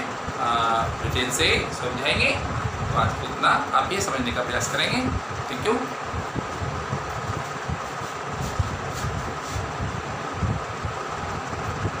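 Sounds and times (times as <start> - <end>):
continuous hiss: 0.0 - 12.0.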